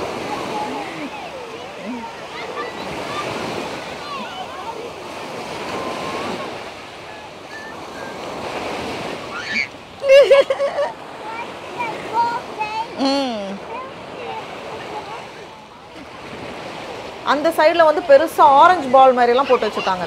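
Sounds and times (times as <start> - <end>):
small waves breaking on sand: 0.0 - 20.0.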